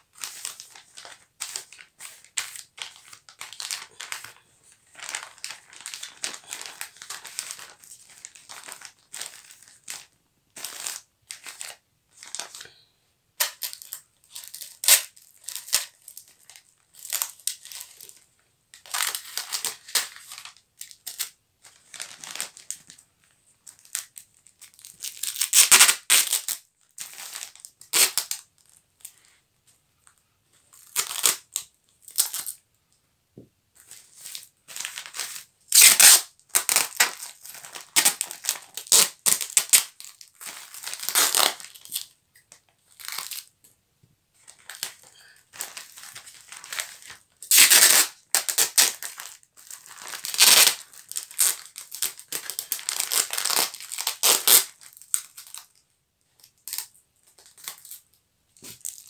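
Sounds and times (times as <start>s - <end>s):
wrapping paper crinkling: 0.0s - 12.7s, 13.4s - 29.3s, 33.8s - 43.5s, 44.4s - 55.8s.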